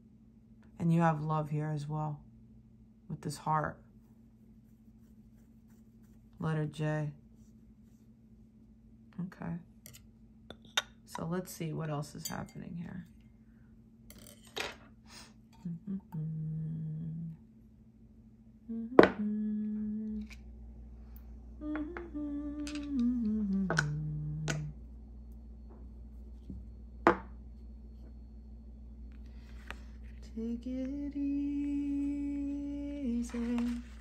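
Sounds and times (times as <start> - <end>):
person humming: 15.6 - 17.5, 18.6 - 20.5, 21.5 - 24.9, 30.2 - 34.0.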